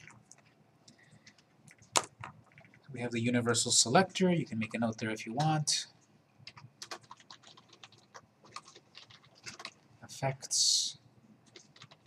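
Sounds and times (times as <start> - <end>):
computer keyboard typing: 1.2 - 2.9, 6.4 - 9.8, 11.4 - 12.0.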